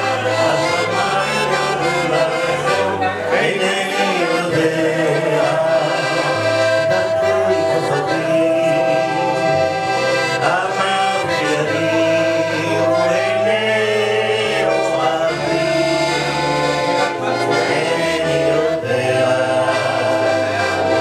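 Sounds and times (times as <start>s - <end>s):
bass line: 0.0s - 21.0s
electronic keyboard: 0.0s - 21.0s
man singing into a microphone: 0.0s - 21.0s
piano accordion: 0.0s - 21.0s.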